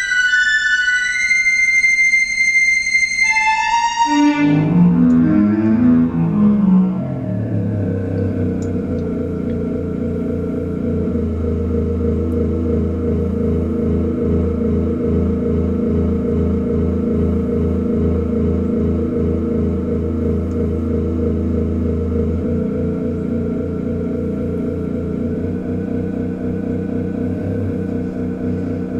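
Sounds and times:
low synth strings hum: 2.2s - 28.9s.

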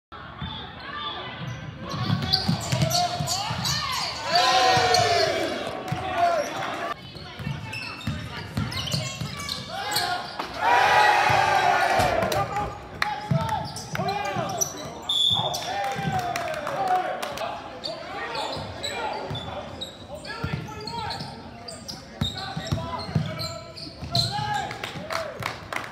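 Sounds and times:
crowd shouting and cheering: 3.3s - 7.0s, 9.7s - 14.6s, 15.4s - 17.6s.

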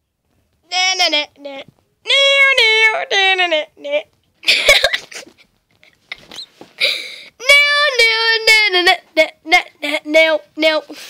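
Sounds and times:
breathy laughter: 4.4s - 7.0s.

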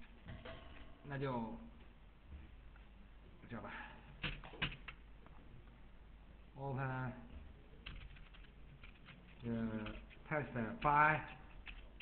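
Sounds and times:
keyboard typing: 4.2s - 5.0s, 7.8s - 12.0s.

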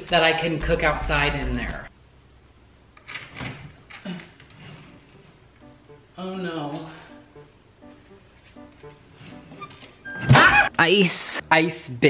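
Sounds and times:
background music: 4.6s - 12.0s.

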